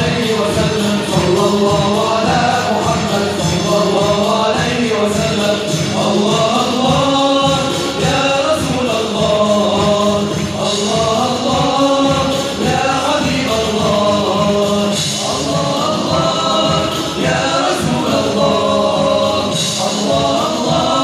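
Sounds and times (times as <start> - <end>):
men singing together: 0.0 - 21.0
steady beat: 0.0 - 21.0.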